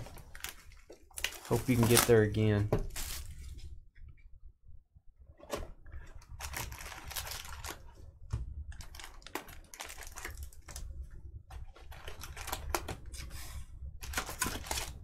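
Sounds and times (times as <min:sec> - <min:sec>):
foil wrappers crinkling: 0:00.0 - 0:03.4, 0:06.4 - 0:07.9, 0:08.8 - 0:10.9, 0:14.0 - 0:15.0.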